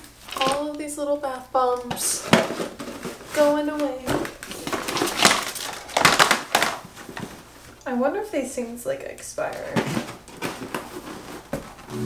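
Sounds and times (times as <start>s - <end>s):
papery rustling: 2.2s - 7.7s, 9.7s - 11.9s.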